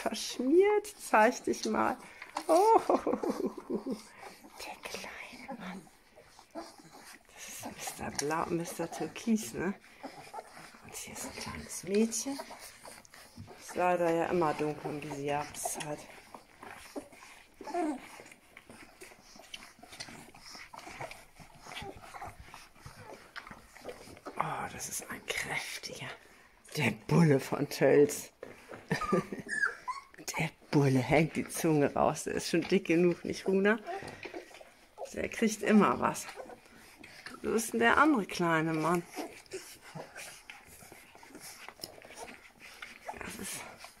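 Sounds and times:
puppies whimpering and squeaking: 0.3s - 25.8s, 27.3s - 44.0s.

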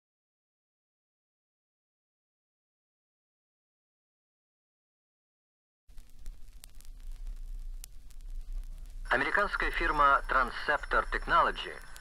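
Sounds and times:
low turntable rumble: 5.9s - 12.0s
sharp record clicks: 5.9s - 12.0s
vinyl surface noise hiss: 5.9s - 12.0s.

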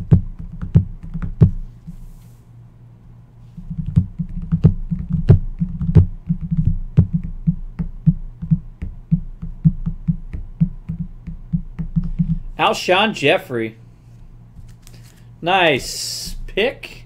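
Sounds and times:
fingers tapping on padded mat: 0.0s - 1.6s, 3.6s - 12.5s
faint low hum: 0.0s - 17.0s.

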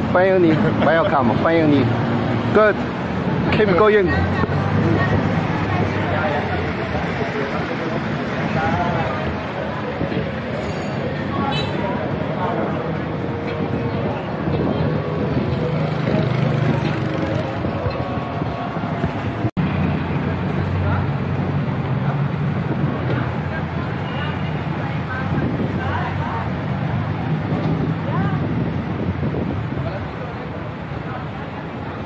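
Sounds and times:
people talking: 0.0s - 2.8s, 3.4s - 19.5s, 20.1s - 32.0s
traffic rumble: 0.0s - 32.0s
wind on microphone: 11.2s - 19.5s, 24.8s - 30.4s.

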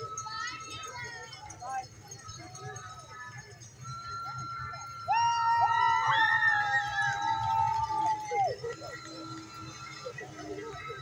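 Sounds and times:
other steady tones: 0.0s - 11.0s.

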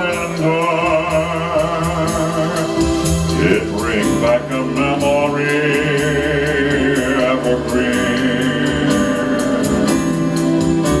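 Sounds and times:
instrumental ballad backing music: 0.0s - 11.0s.

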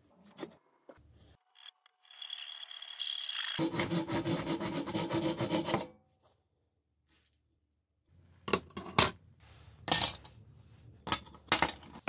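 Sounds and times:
hacksaw cutting metal tube: 2.2s - 5.9s.

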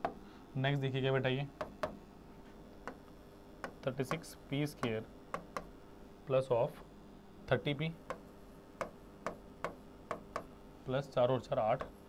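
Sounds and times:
marker tapping on whiteboard: 1.6s - 2.0s, 2.8s - 3.0s, 3.6s - 5.7s, 8.1s - 10.5s.

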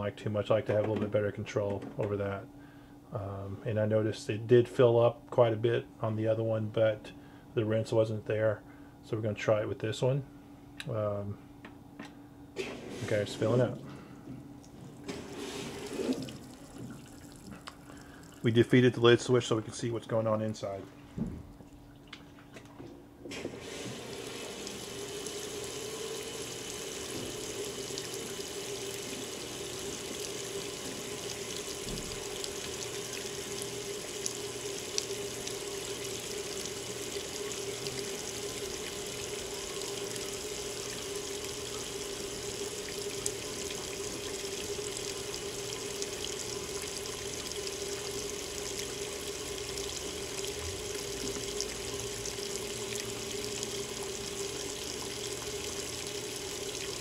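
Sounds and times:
steady hum: 0.0s - 57.0s
water pouring into washer: 12.8s - 13.8s, 15.0s - 18.6s, 23.3s - 57.0s.

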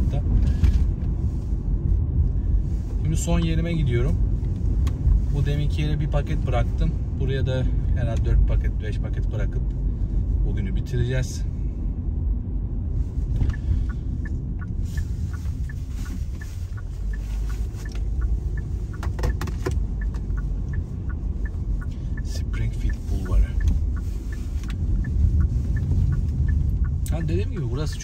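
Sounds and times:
car engine and tyre noise: 0.0s - 28.0s.

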